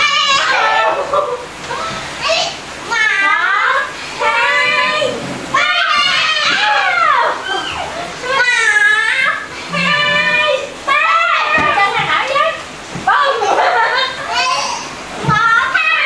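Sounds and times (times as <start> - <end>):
children shrieking and laughing: 0.0 - 16.0.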